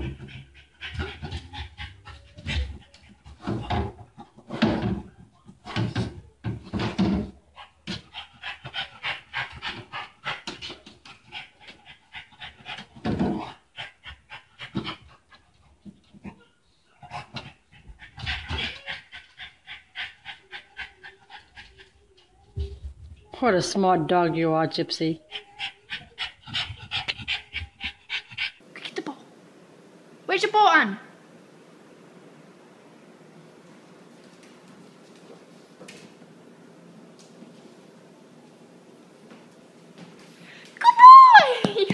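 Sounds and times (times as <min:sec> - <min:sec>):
dog panting rapidly: 0:00.0 - 0:03.5, 0:07.9 - 0:15.6, 0:17.1 - 0:21.9, 0:25.2 - 0:28.6.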